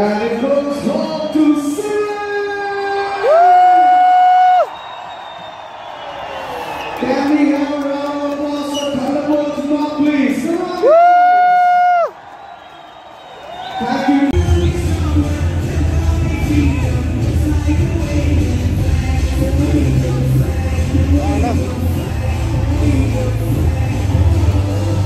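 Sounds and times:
stadium crowd cheering: 0:00.0 - 0:25.0.

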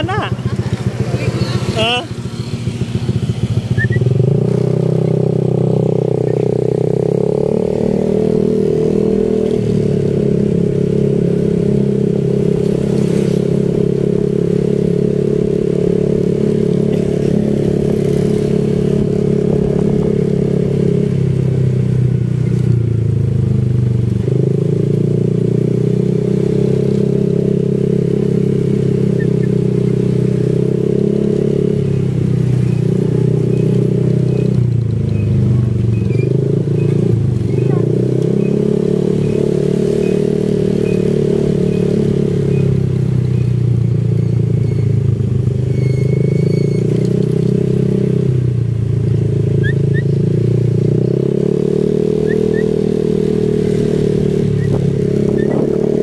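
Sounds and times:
motorcycle engine drone: 0:00.0 - 0:56.0.

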